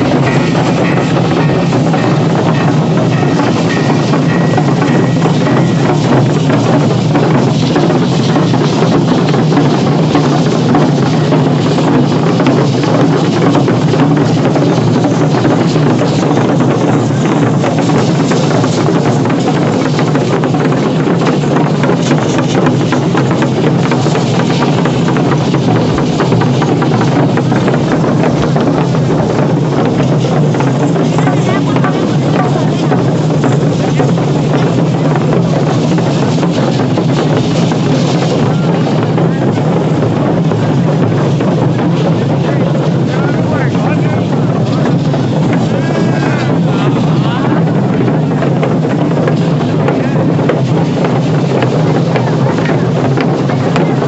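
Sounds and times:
crowd voices: 0.0 - 54.0
drumming: 0.0 - 54.0
low rumble: 0.0 - 54.0.

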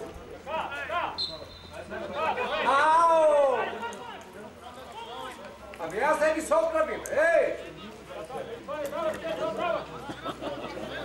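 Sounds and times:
men talking and calling out: 0.0 - 11.0
open-air background: 0.0 - 11.0.

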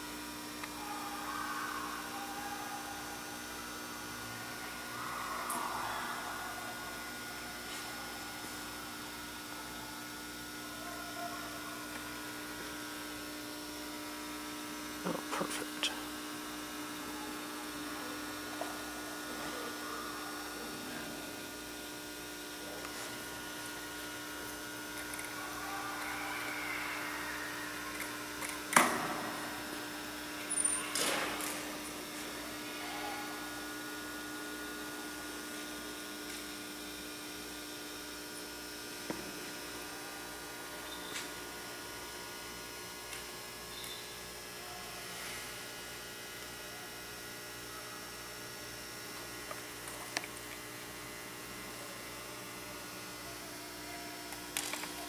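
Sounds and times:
faint voices: 0.0 - 36.2
steady electrical hum: 0.0 - 55.0.

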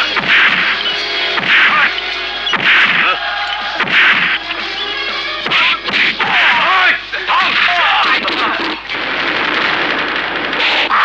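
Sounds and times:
film music: 0.0 - 7.8
loud fight whack: 0.2 - 0.8, 1.4 - 1.9, 2.5 - 3.1, 3.8 - 4.4.

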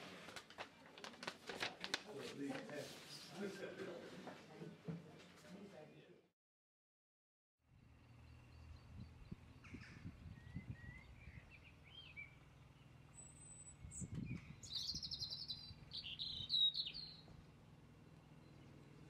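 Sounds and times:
birds chirping and singing: 8.0 - 17.5.

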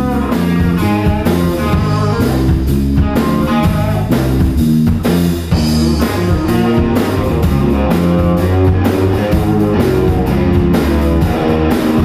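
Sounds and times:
blues-rock band music: 0.0 - 12.0.

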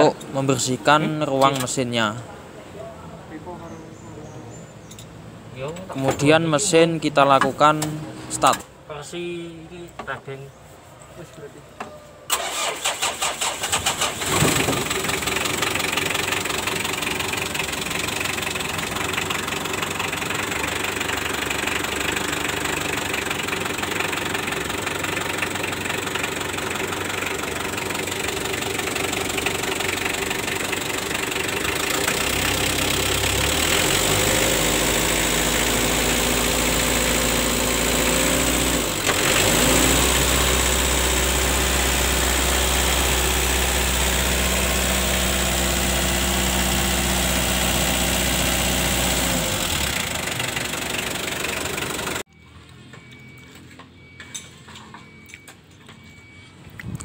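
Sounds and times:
diesel engine idling: 12.3 - 54.2.

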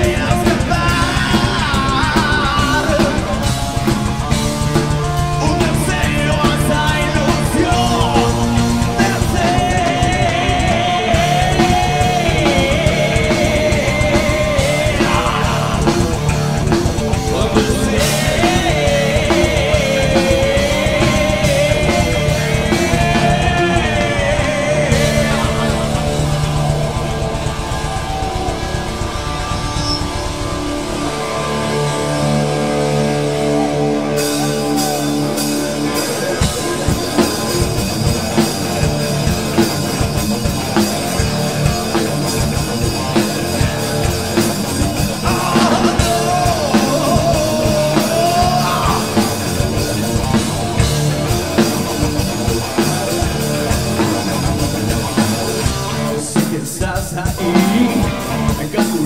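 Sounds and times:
drum kit: 0.0 - 59.0
electric guitars: 0.0 - 59.0.

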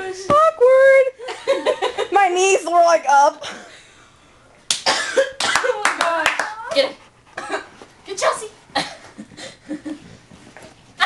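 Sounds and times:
sharp clap-like smacks: 4.7 - 6.5.

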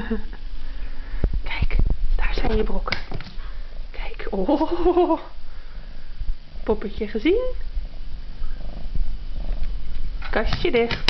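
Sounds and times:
cat purring: 6.6 - 10.3.

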